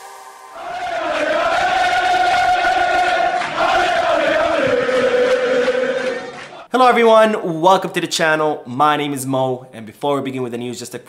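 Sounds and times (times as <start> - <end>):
massed voices chanting: 0.5 - 6.7.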